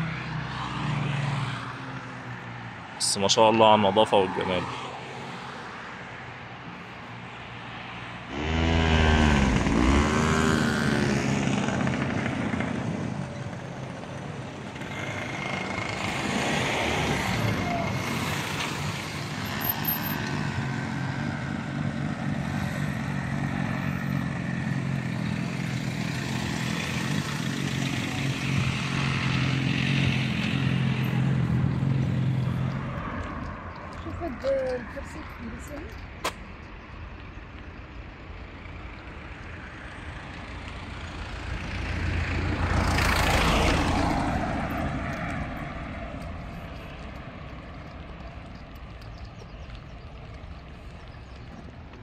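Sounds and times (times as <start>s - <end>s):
vehicle passing: 0.0s - 36.2s, 38.6s - 52.0s
steady engine hum: 6.4s - 52.0s.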